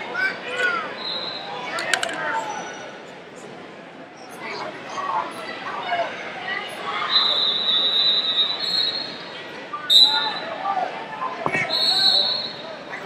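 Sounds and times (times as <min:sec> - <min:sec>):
chatter in echoing hall: 0:00.0 - 0:13.0
referee's whistle blasts: 0:09.9 - 0:10.5, 0:11.5 - 0:12.6
thud: 0:11.5 - 0:11.8.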